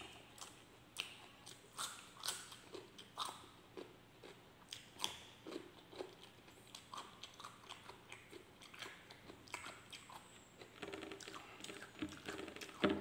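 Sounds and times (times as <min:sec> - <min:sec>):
cucumber crunching when chewed: 0:00.0 - 0:12.8.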